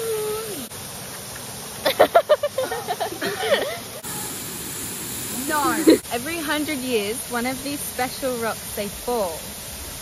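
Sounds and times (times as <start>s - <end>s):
waterfall rushing: 0.0s - 10.0s
young women laughing and squealing: 1.8s - 4.1s, 5.5s - 6.1s.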